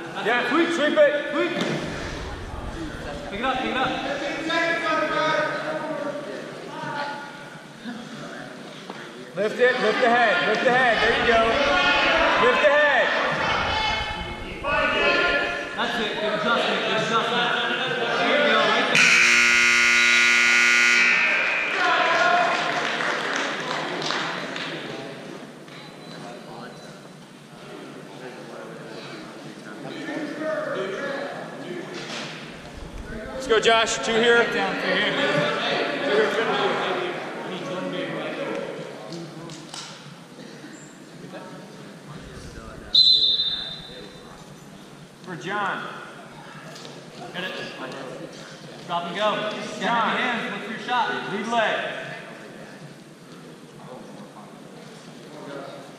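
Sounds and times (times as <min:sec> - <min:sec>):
voices in hall: 0:00.0 - 0:55.9
referee's whistle: 0:19.0 - 0:21.8, 0:42.9 - 0:44.2
scoreboard buzzer: 0:19.0 - 0:21.8.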